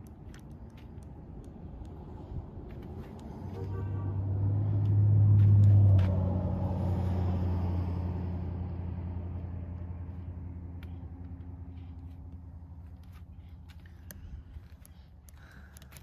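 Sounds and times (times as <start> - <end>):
low motor vehicle rumble: 0.0 - 16.0.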